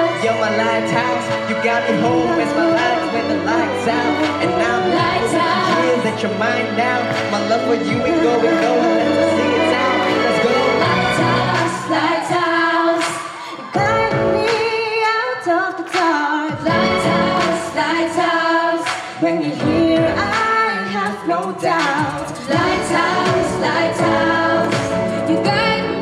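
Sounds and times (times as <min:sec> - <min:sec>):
a cappella group singing: 0:00.0 - 0:26.0.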